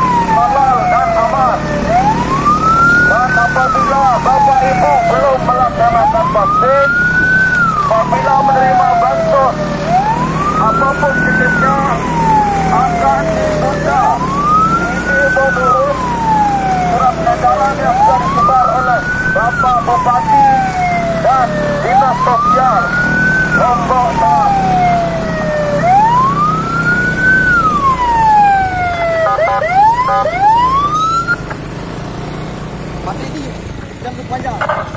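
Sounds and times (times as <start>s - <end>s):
police siren wailing: 0.0s - 31.5s
motorbike engine humming: 0.0s - 34.9s.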